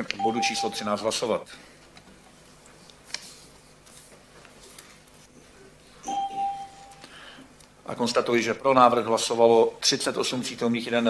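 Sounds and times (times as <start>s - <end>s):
electronic chime tone: 6.0s - 7.0s.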